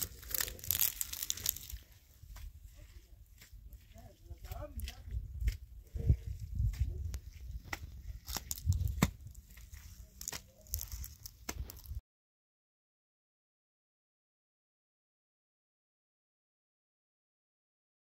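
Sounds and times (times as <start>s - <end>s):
hands crumbling dry earth and straw: 0.0s - 2.9s, 6.3s - 12.0s.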